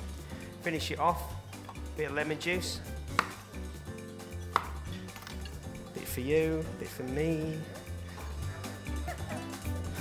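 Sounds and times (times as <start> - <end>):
background music with low beat: 0.0 - 10.0.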